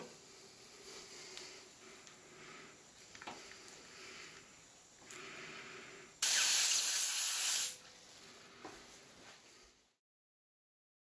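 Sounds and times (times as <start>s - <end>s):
compressed air hissing: 3.4s - 7.8s.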